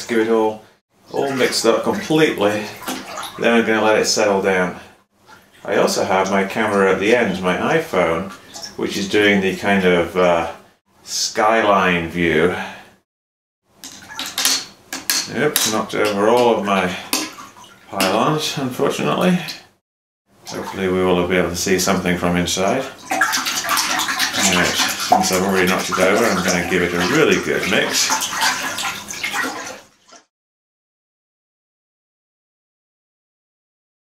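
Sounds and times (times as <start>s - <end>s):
water splashing in a tank: 0.0s - 10.6s, 13.7s - 30.3s.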